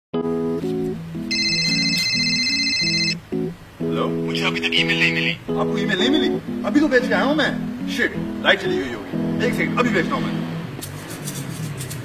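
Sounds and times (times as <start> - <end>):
background music: 0.2 - 12.0
phone alert tone: 1.2 - 3.2.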